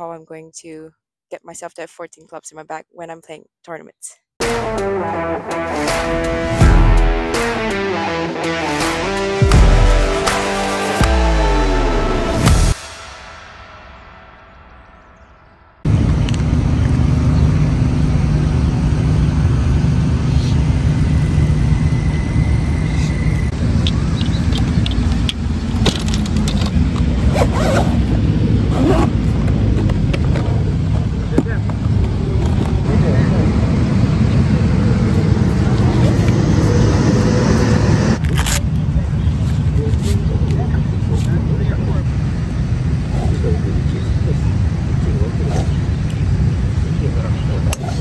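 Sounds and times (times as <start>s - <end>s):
intro music: 4.4s - 16.8s
heavy low rumble: 11.2s - 48.0s
sharp clicks and knocks: 23.8s - 27.1s.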